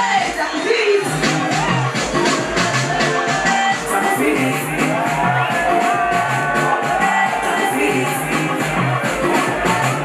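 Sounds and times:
deep bass beat: 1.0 - 10.0
crowd shouting along: 1.1 - 3.8, 4.6 - 8.1, 8.8 - 10.0
person singing into microphone: 2.4 - 10.0.

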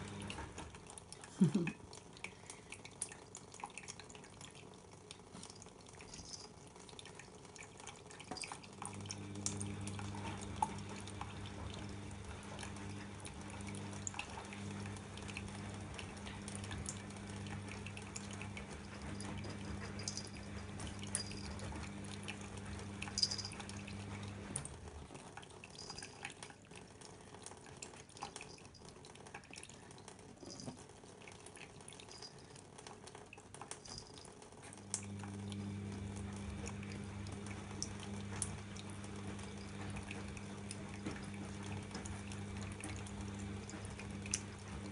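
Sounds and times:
water drips and splashes: 0.0 - 44.9
water running into a steel sink: 0.0 - 44.9
steady low hum: 5.5 - 25.1, 33.7 - 44.9.

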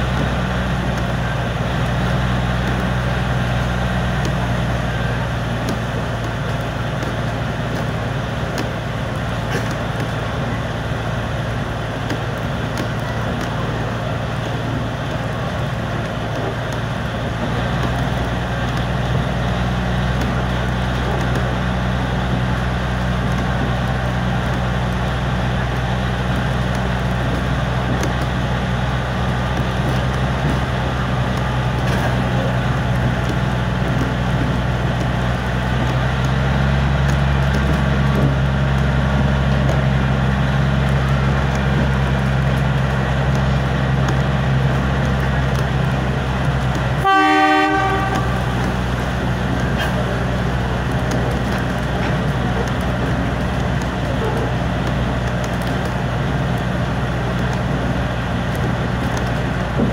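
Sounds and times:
locomotive low drone: 0.0 - 59.9
wheel and track rumble: 0.0 - 59.9.

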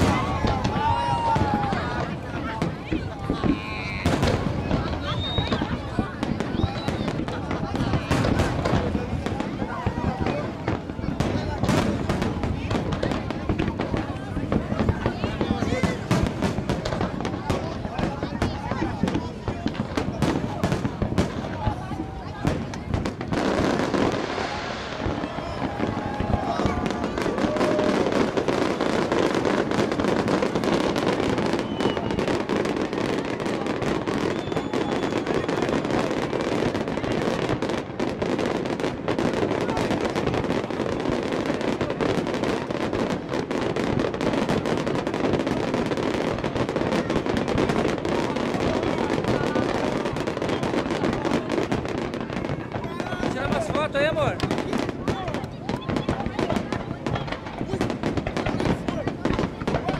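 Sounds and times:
fireworks bangs and crackles: 0.0 - 59.9.

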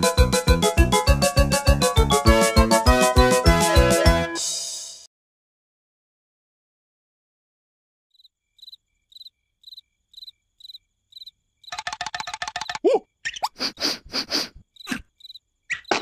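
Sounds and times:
cricket chirping: 8.1 - 16.0
cartoon character noises: 12.6 - 13.1.

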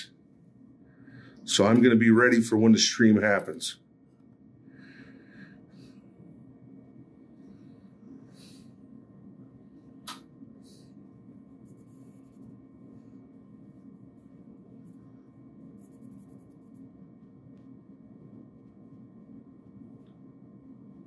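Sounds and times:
sharp click: 10.0 - 10.3.

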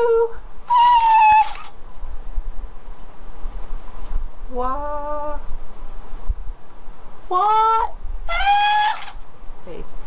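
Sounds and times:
toy high-pitched voice cries: 0.7 - 1.7, 8.3 - 9.2.

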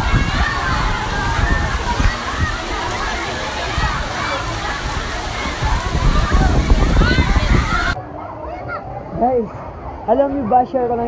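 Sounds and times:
water splashing and spraying: 0.0 - 8.0
people chattering: 0.0 - 11.0.

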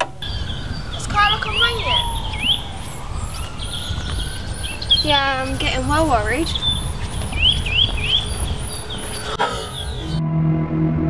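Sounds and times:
birds chirping: 0.0 - 10.2
wind rumble on microphone: 0.0 - 10.2
pitched bird call: 0.2 - 10.2.

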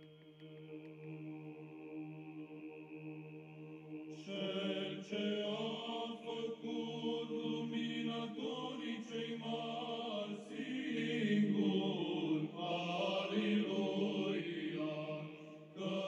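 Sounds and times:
voices singing a melody: 0.0 - 16.0
voices chanting a drone: 0.6 - 16.0.

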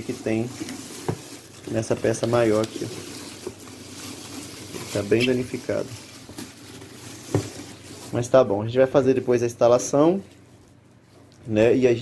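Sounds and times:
packing paper rustling: 0.0 - 11.2.

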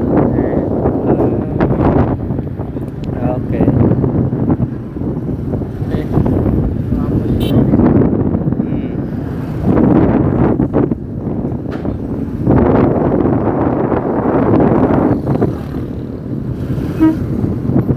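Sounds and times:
wind buffeting microphone: 0.0 - 17.9.

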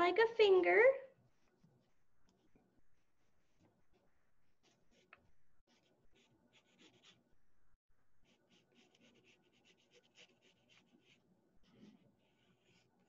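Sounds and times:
pencil scratching on paper: 1.2 - 7.3, 8.2 - 13.0.

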